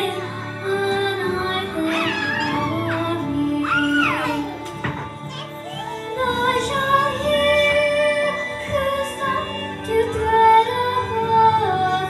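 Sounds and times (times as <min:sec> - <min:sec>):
backing track music: 0:00.0 - 0:12.0
girl singing into a microphone: 0:00.0 - 0:12.0.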